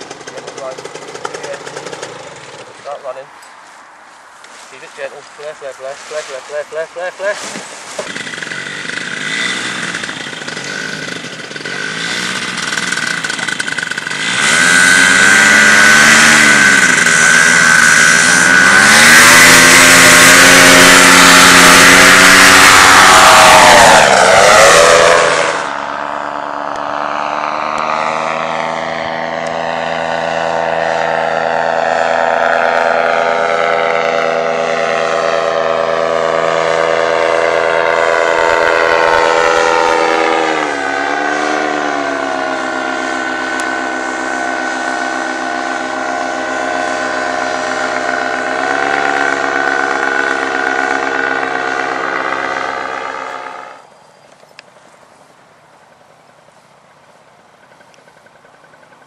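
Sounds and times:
paramotor engine and propeller: 0.0 - 3.6, 5.0 - 54.9, 55.8 - 59.0.

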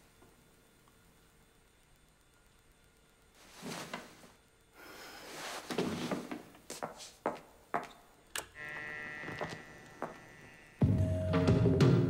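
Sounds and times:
steady high whine: 0.0 - 12.0.

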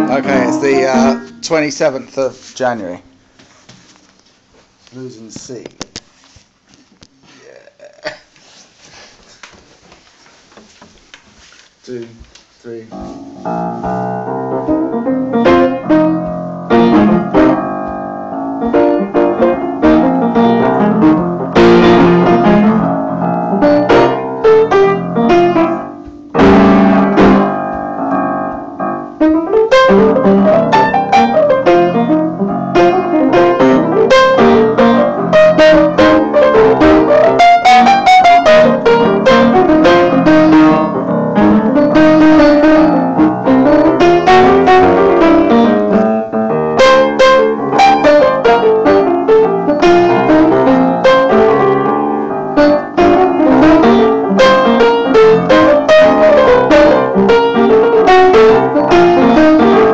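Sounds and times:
solo blues piano: 0.0 - 3.3, 12.6 - 59.9.

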